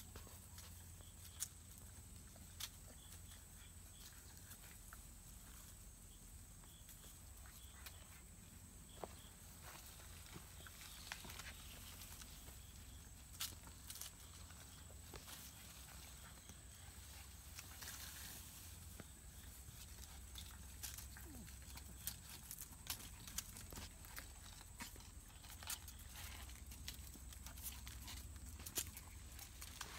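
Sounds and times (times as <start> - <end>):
puppy paws on concrete: 0.0 - 29.9.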